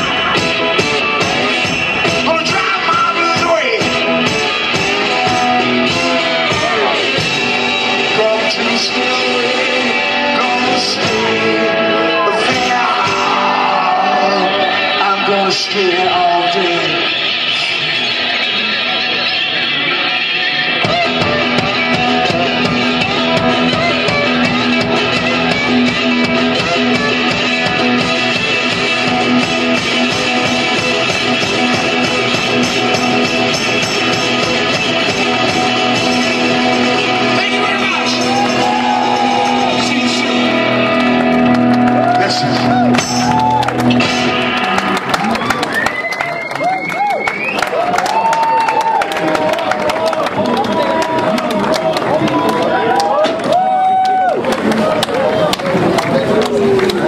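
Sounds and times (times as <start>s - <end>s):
steady beat: 0.0s - 9.1s, 20.7s - 45.7s
blues guitar: 0.0s - 57.0s
person singing: 4.8s - 17.6s, 35.4s - 41.1s.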